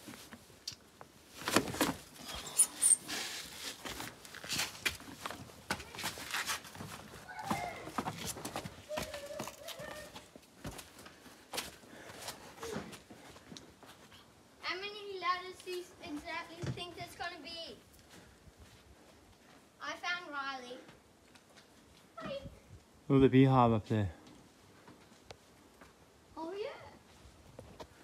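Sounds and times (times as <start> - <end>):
shoes scuffing on rock and sand: 3.1 - 14.1.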